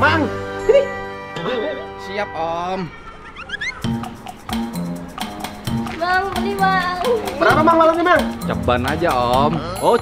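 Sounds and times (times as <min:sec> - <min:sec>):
upbeat background music: 0:00.0 - 0:10.0
rising whistle-like chirps: 0:03.0 - 0:03.9.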